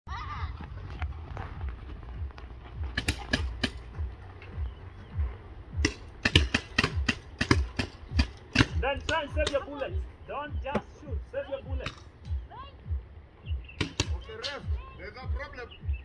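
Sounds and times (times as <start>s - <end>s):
paintball markers firing: 2.9s - 3.9s, 5.8s - 9.7s, 13.8s - 14.2s.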